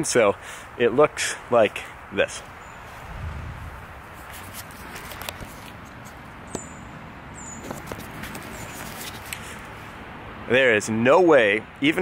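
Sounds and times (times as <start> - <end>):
outdoor background hiss: 0.0 - 12.0
low rumble: 3.1 - 3.9.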